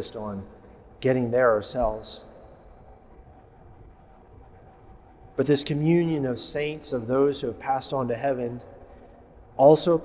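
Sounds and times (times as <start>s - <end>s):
faint thin steady hum: 0.0s - 10.0s.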